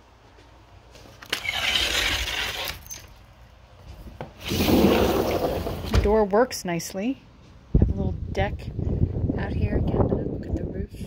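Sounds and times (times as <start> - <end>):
glass door rolling along track: 4.4 - 6.2.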